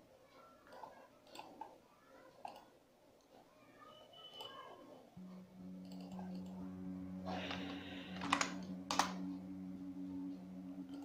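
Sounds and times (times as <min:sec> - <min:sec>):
steady low hum: 0:05.2 - 0:11.0.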